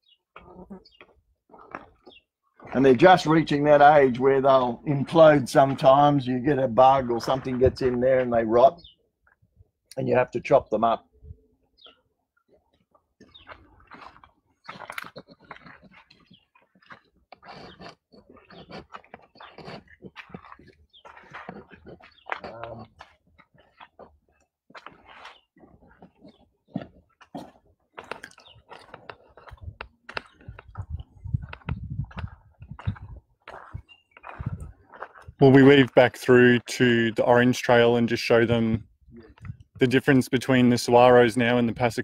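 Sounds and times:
footsteps crunching on gravel: 0.8 - 9.0, 12.8 - 39.9.

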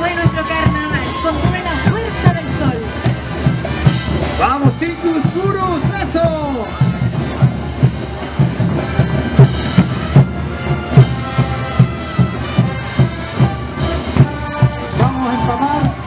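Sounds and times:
bass drum beat: 0.0 - 16.0.

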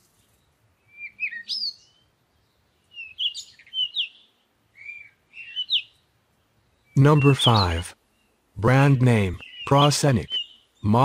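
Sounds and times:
bird chirps: 0.2 - 11.0.

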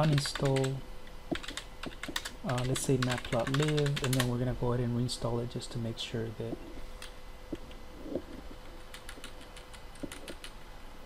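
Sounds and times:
keyboard key clicks: 8.9 - 10.5.

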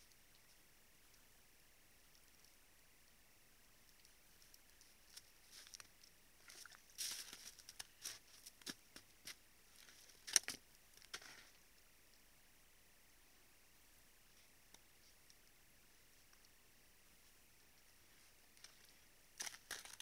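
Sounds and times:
hooves crunching in snow: 6.4 - 10.1.

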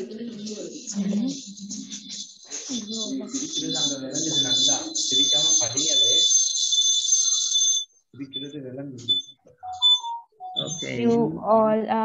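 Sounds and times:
shrill high-pitched whistling with hiss: 1.3 - 6.2.

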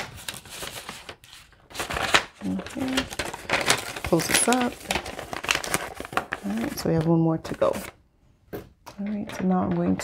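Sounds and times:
paper envelope and banknotes rustling: 0.0 - 8.0.

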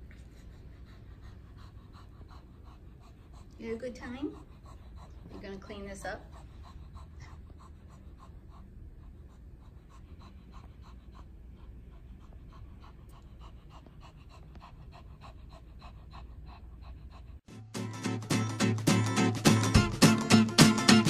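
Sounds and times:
dog panting rapidly: 0.0 - 17.5.

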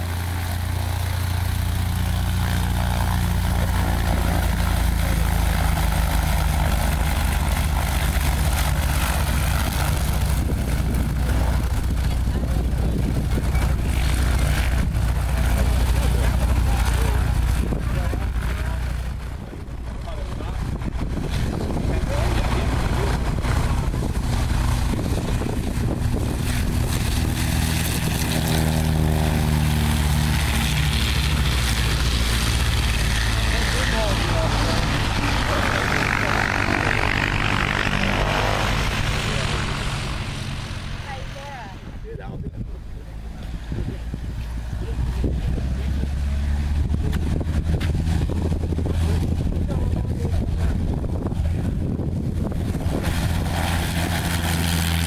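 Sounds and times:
airplane engine passing by: 0.0 - 55.0
propeller airplane engines taxiing: 0.0 - 55.0.

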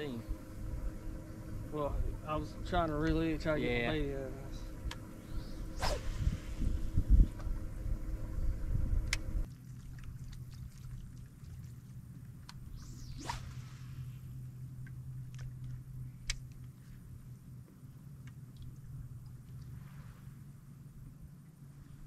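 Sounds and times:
low steady hum: 0.0 - 22.0
wind rumble on microphone: 5.1 - 9.5
fishing rod swishing: 5.2 - 7.0, 12.6 - 14.4
fishing line whizzing off reel: 5.2 - 7.4, 12.6 - 14.6.

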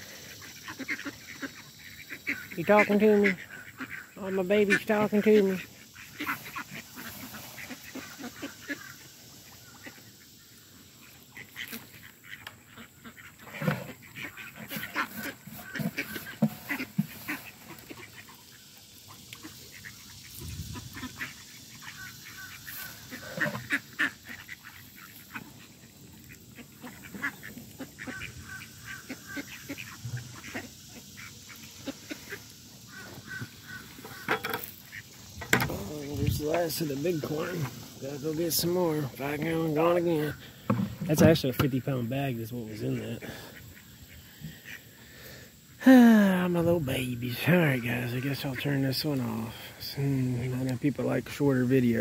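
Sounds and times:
ducks quacking: 0.0 - 52.0
geese honking: 0.0 - 52.0.

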